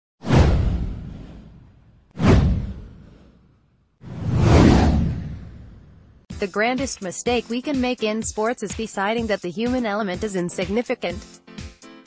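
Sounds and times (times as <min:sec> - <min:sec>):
whoosh with low rumble: 0:00.2 - 0:06.3.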